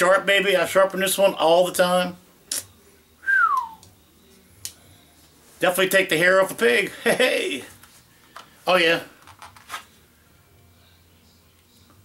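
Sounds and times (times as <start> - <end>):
pistol handling rustles: 9.2 - 9.9.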